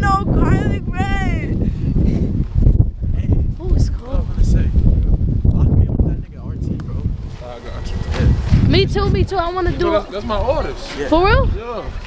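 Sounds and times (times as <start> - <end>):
low rumble: 0.0 - 9.8
women chattering: 8.6 - 10.3.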